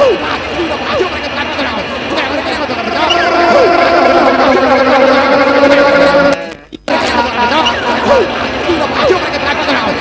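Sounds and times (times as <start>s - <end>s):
loud held drone: 2.6s - 6.6s.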